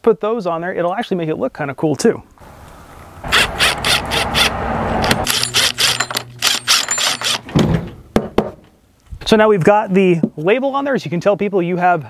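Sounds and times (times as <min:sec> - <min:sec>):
cordless drill driving screws: 0:03.3 - 0:07.5
drill clicks: 0:03.3 - 0:07.5.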